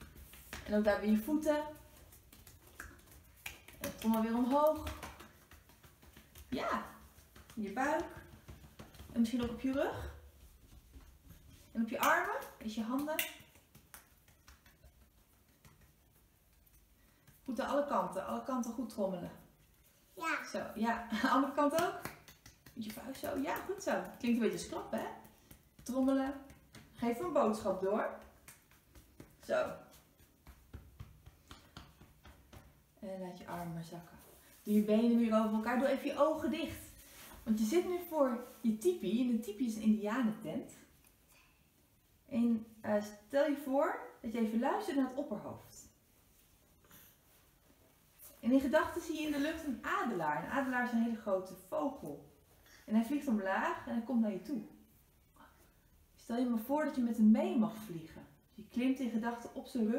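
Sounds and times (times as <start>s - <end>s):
children's fists tapping legs: 0.0s - 18.4s, 21.1s - 32.9s.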